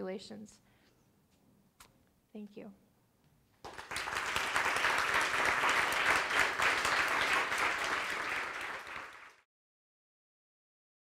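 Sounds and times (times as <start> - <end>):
audience applauding: 3.6 - 9.5.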